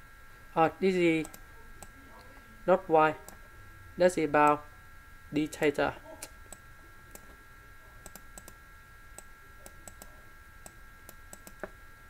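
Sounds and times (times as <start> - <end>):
faint high whine: 0.0 - 12.0
stylus clicks: 8.0 - 8.6, 9.2 - 11.7.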